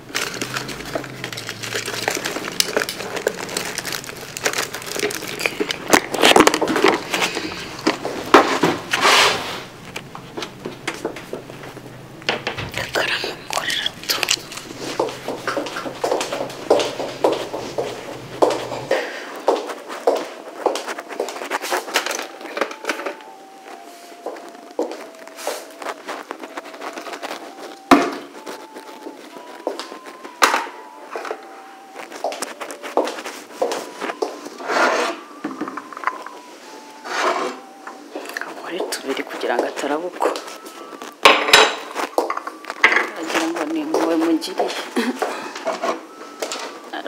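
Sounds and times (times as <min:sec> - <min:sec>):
footsteps on hard floor: 0:00.0 - 0:46.9.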